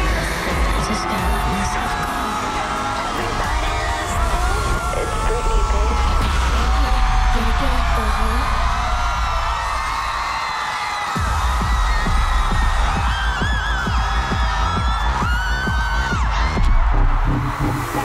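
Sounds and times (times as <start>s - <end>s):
crowd screaming and cheering: 0.0s - 18.0s
electronic pop dance music: 0.0s - 18.0s.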